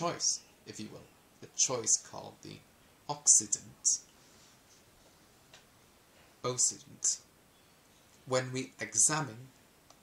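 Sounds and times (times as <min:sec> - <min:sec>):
faint tick: 0:09.6 - 0:10.0.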